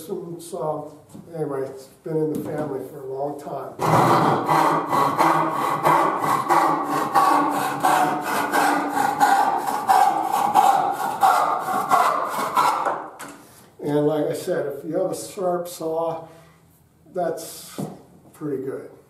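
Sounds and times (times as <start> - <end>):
handsaw cutting a board: 3.8 - 13.0.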